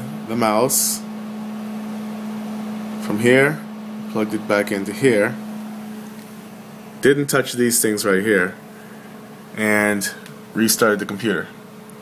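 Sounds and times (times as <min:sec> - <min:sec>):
desktop computer fans whirring: 0:00.0 - 0:12.0.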